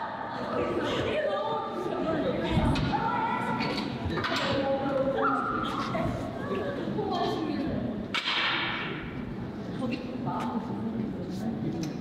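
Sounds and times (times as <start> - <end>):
young women talking: 0.2 - 8.0.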